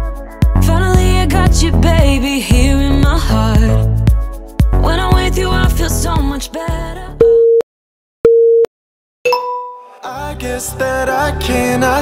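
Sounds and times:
pop music: 0:00.0 - 0:07.3, 0:09.3 - 0:12.0.

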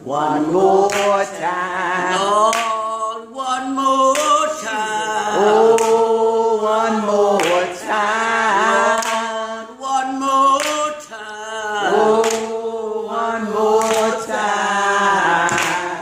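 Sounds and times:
hand claps: 0:00.8 - 0:01.3, 0:02.4 - 0:02.9, 0:04.1 - 0:04.7, 0:05.7 - 0:06.1, 0:07.4 - 0:07.8, 0:08.8 - 0:09.4, 0:10.6 - 0:11.1, 0:12.2 - 0:12.6, 0:13.8 - 0:14.3, 0:15.4 - 0:16.0.

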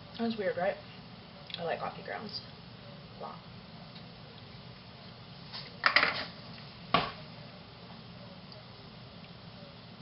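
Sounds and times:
low background hum: 0:00.0 - 0:10.0
kitchenware clattering: 0:05.8 - 0:06.4.

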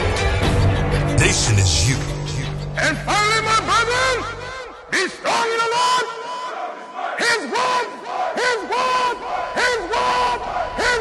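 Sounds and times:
voices shouting: 0:06.5 - 0:11.0.

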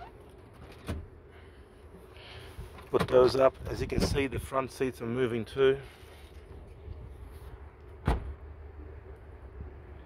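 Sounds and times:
low steady rumble: 0:00.0 - 0:10.0
sharp thump: 0:08.0 - 0:08.4.

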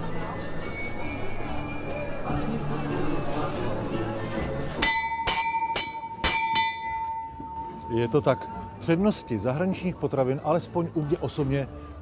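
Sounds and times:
large bell ringing: 0:04.8 - 0:09.8.

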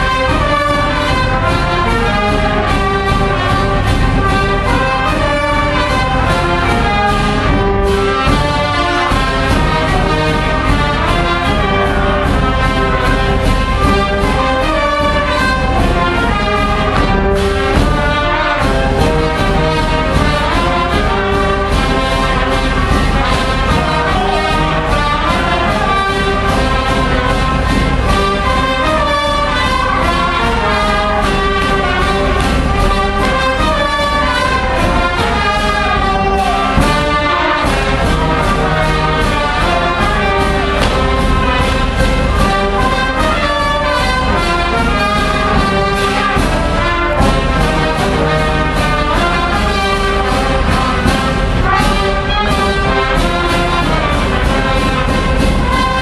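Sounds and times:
brass band playing folk dance tunes: 0:00.0 - 0:56.0.

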